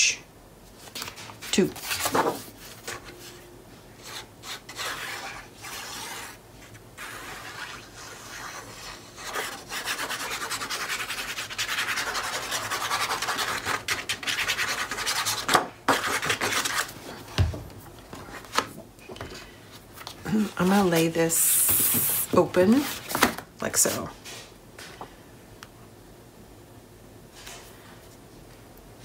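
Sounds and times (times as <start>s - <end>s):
paper handling: 0.8s - 3.4s
rapid rubbing on paper: 4.0s - 16.9s.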